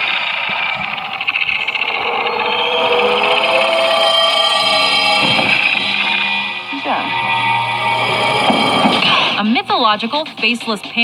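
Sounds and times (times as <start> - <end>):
hissing drone: 0.0 - 9.6
held tones: 0.5 - 9.0.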